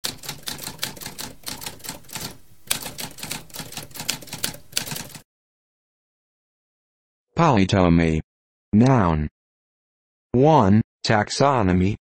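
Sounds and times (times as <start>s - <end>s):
typewriter keys clacking: 0.0s - 5.2s.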